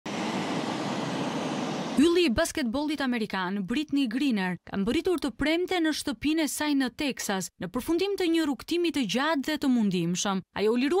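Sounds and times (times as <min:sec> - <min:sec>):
jet engines running: 0:00.0 - 0:02.1.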